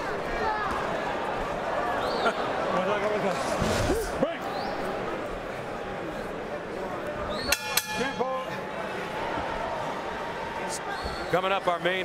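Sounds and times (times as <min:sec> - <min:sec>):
crowd noise: 0:00.0 - 0:12.0
boxing ring bell ringing: 0:07.5 - 0:08.5.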